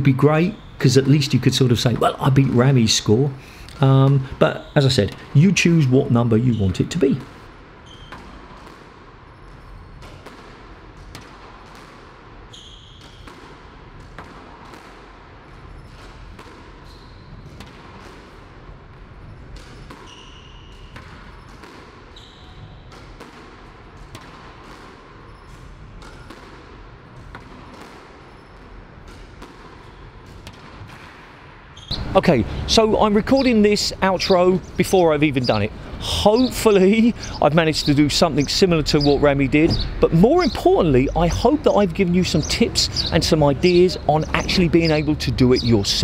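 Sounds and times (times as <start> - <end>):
shoe squeaks: 0.0 - 8.4, 9.3 - 10.0, 12.5 - 13.3, 16.8 - 17.6, 19.3 - 22.9, 25.2 - 26.3, 31.8 - 46.0
squash ball hits: 7.1 - 37.5.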